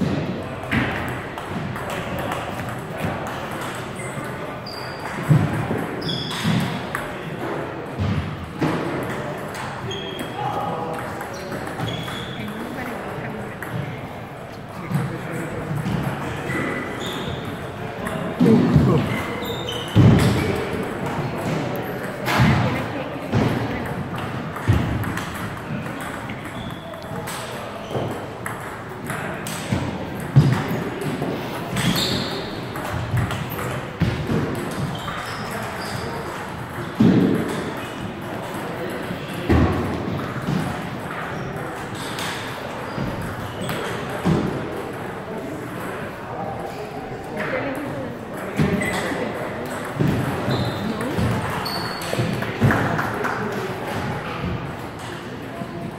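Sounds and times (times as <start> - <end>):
ball bouncing on table: 48.4 - 54.0.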